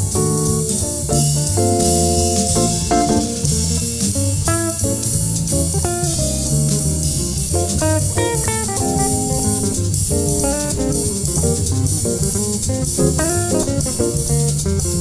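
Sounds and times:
piano chords: 0.0s - 14.5s
drums keeping time: 0.0s - 15.0s
electric guitar jazz notes: 0.0s - 15.0s.

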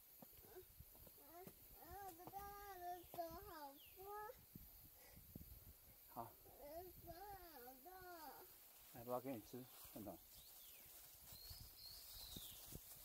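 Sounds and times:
child's sing-song calls: 1.2s - 4.5s, 6.6s - 8.6s.

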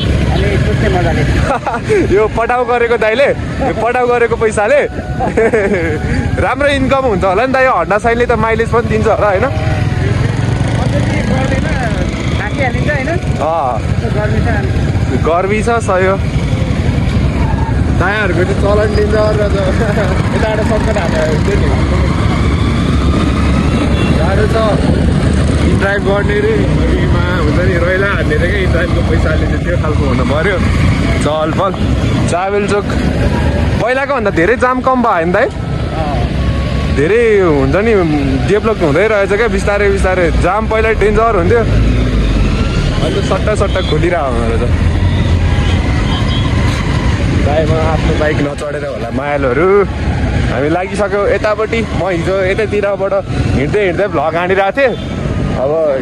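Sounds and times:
motorcycle engine rumble: 0.0s - 56.0s.

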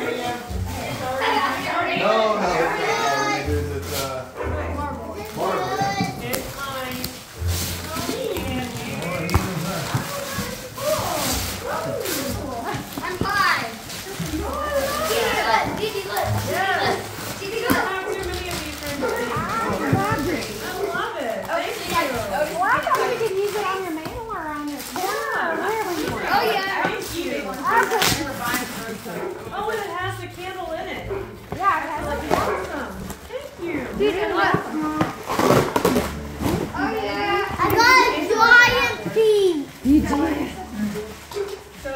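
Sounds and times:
people and children chattering: 0.0s - 41.9s.

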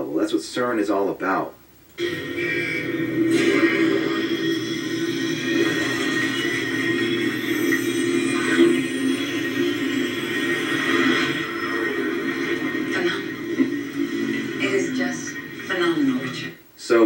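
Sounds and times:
background music with held tones: 1.8s - 16.5s.

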